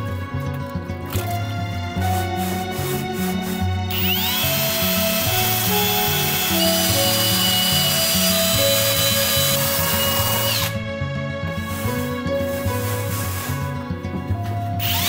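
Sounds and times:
brush scrubbing plastic rim: 2.0 - 3.8, 11.5 - 14.2
cordless drill whining: 3.0 - 10.8, 14.8 - 15.0.

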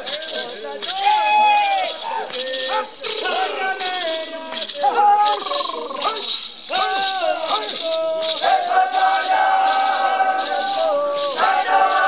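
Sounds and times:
gourd rattles shaking: 0.0 - 12.0
men chanting: 0.0 - 12.0.

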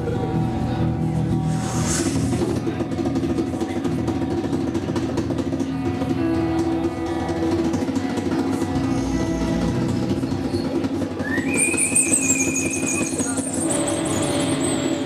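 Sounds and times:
whining sliding tone: 1.3 - 2.8
shrill whistling tone: 11.2 - 15.0.

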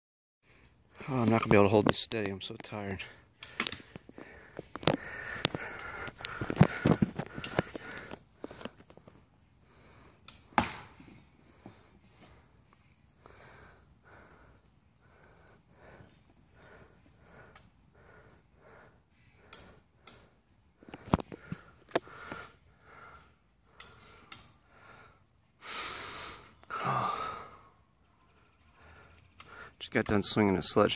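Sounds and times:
rapid breathing: 3.0 - 9.0, 9.6 - 10.2, 11.4 - 29.8.

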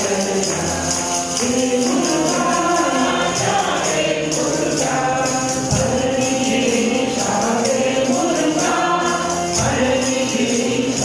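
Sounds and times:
devotional group singing: 0.0 - 11.0
harmonium: 0.0 - 11.0
tambourine jingles: 0.0 - 11.0.

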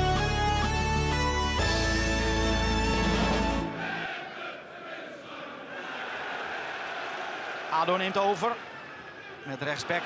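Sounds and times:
intro theme music: 0.0 - 4.0
stadium crowd hum: 3.0 - 10.0
crowd singing or chanting: 3.6 - 7.4.

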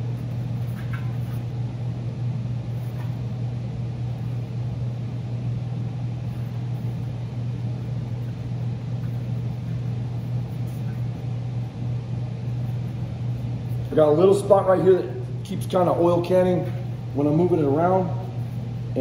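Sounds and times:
machine humming: 0.0 - 19.0.

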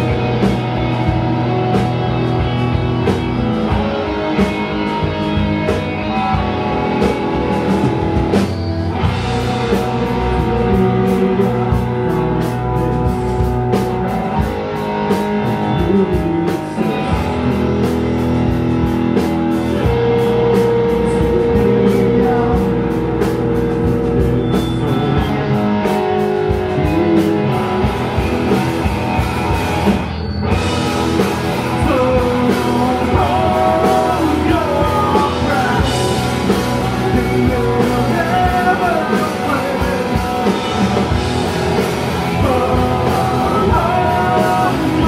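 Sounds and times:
bass guitar: 0.0 - 45.0
drum kit: 0.0 - 45.0
electric guitar: 0.0 - 45.0
person singing: 9.4 - 13.5, 15.4 - 18.8, 19.8 - 28.5, 30.7 - 45.0.

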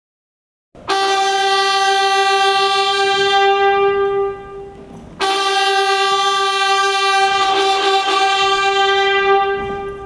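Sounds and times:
brass horn long note: 0.8 - 10.0.

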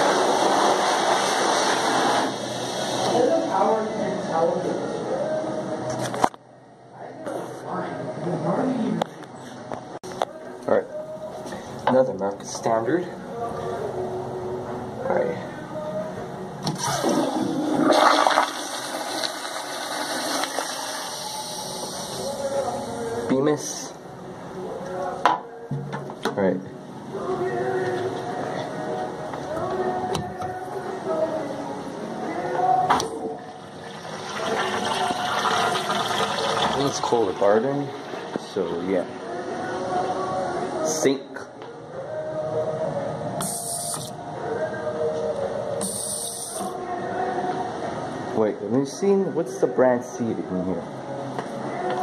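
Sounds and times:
faint background music: 0.0 - 52.0
faucet running into sink: 33.9 - 38.4.

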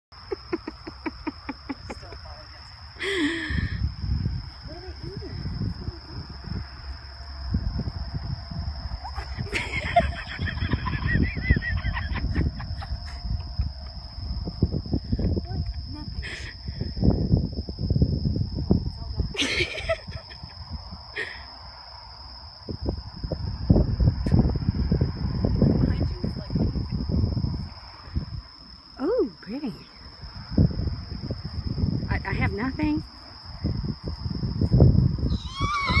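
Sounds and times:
high insect drone: 0.2 - 36.0
low rumble on microphone: 2.9 - 19.4, 22.4 - 28.6, 29.9 - 36.0.

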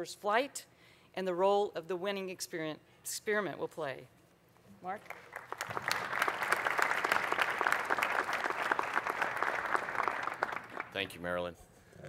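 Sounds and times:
audience applauding: 5.0 - 11.2.

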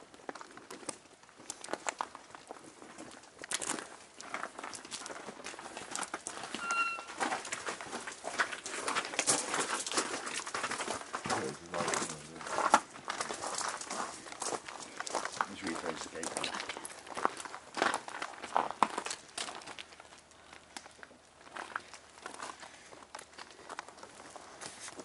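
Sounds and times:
footsteps: 2.8 - 25.0.

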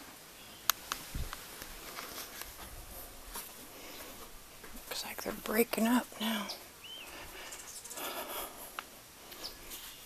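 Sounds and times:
faint rustling: 0.8 - 10.0.

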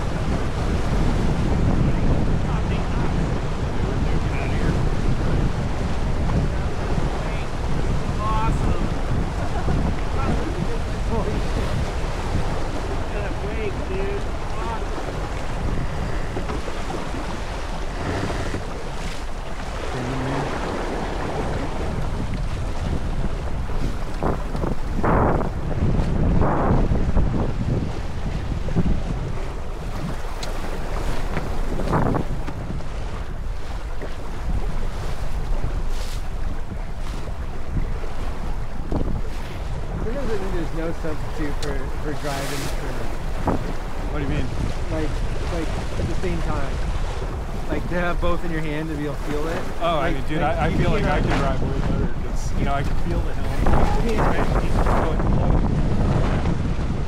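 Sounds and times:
water rushing along hull: 0.0 - 57.0
wind buffeting microphone: 0.0 - 57.0.

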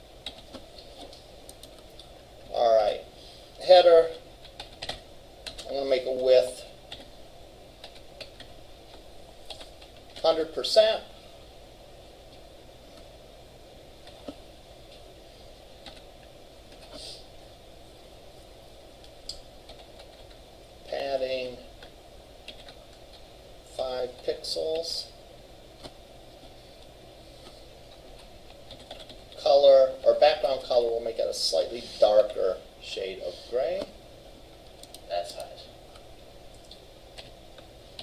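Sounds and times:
low room hum: 0.0 - 38.0
computer keyboard typing: 0.2 - 2.1, 4.4 - 5.8, 6.9 - 7.1, 7.8 - 8.6, 9.4 - 10.3, 15.7 - 16.1, 19.2 - 20.4, 21.8 - 23.2, 27.9 - 29.4, 34.7 - 37.3.

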